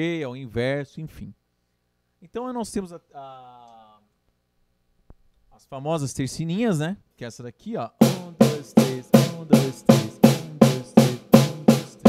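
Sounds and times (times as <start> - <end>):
snare drum strokes: 8.0 - 12.0.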